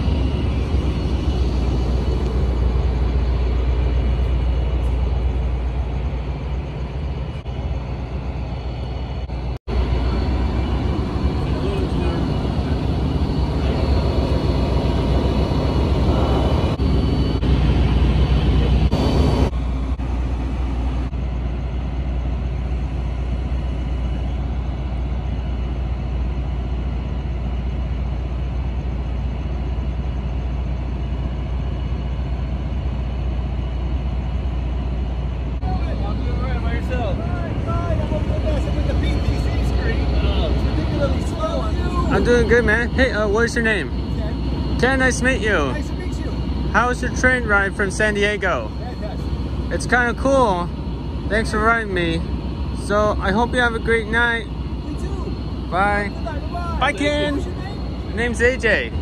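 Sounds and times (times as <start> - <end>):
locomotive engine idling: 0.0 - 59.0.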